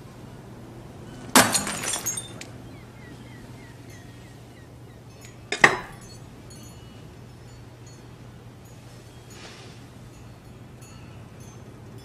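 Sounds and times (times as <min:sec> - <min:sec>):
clinking clatter: 0:01.3 - 0:02.5
glass crashing: 0:01.3 - 0:02.5.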